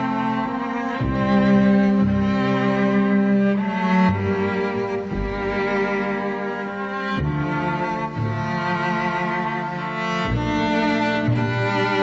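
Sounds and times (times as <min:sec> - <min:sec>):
cellos and violins sustained chords: 0:00.0 - 0:12.0.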